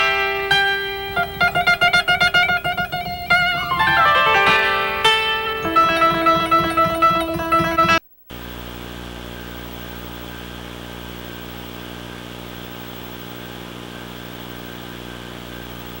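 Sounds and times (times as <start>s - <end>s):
buzzing hum with overtones: 0.0s - 16.0s.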